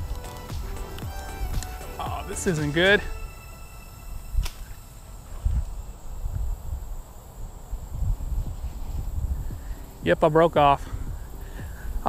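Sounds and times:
fishing line snapping: 0.0 - 1.8, 4.4 - 4.8
wind rumble on microphone: 4.1 - 12.0.

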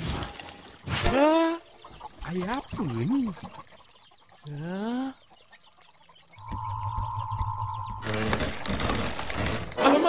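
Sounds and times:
high humming tone: 6.4 - 8.5.

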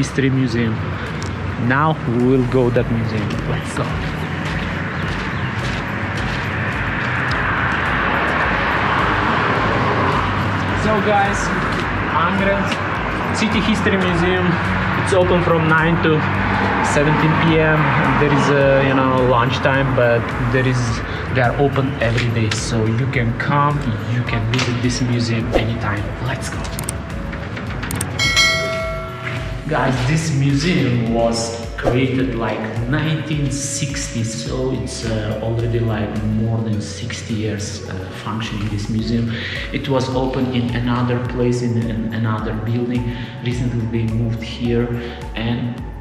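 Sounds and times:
steady outdoor rushing: 0.0 - 22.0
footsteps on paving: 2.4 - 8.1
bell chime ringing: 28.0 - 29.7.

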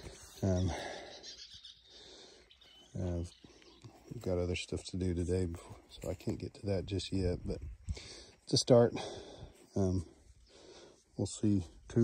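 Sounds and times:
faint bird chirping: 0.0 - 6.2.

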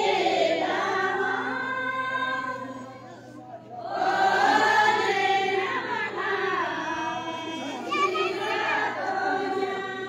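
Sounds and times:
group singing folk song: 0.0 - 2.8, 3.8 - 10.0.

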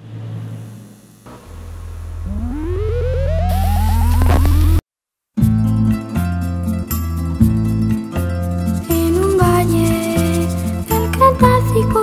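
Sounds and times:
low electronic hum: 1.0 - 4.8
warbling chirping tone rising: 1.5 - 4.8.

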